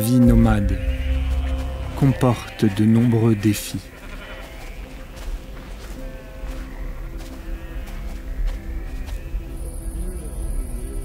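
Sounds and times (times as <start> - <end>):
soft background music: 0.0 - 11.0
sheep and goats bleating: 0.2 - 11.0.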